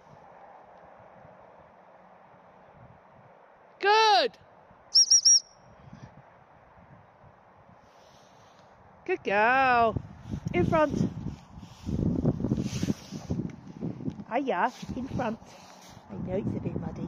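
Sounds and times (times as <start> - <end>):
woman calling out: 3.8 - 4.4, 9.1 - 10.0
high whistle pips: 4.9 - 5.6.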